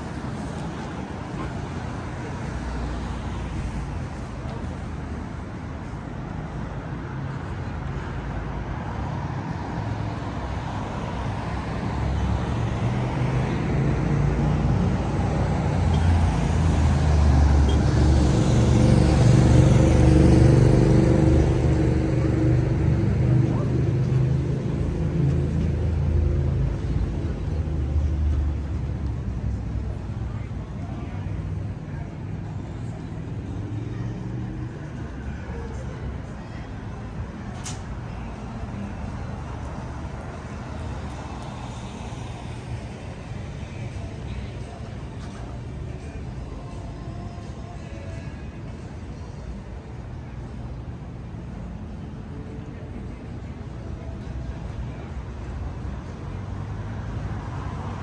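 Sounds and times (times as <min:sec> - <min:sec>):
road noise: 0:00.0 - 0:58.0.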